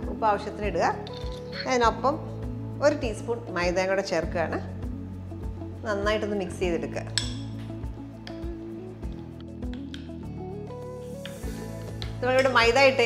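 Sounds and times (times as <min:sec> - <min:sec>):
background music: 0:00.0 - 0:13.0
spoon clinking against dish: 0:07.2 - 0:07.6, 0:12.3 - 0:12.7.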